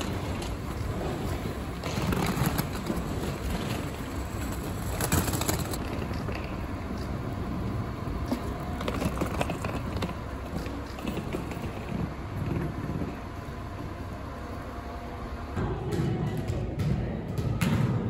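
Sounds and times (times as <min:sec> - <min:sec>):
suitcase wheels rolling on concrete: 0:00.0 - 0:15.6
outdoor background noise: 0:00.0 - 0:18.0
voices in reverberant room: 0:15.5 - 0:18.0
football kicks and thuds: 0:15.8 - 0:18.0.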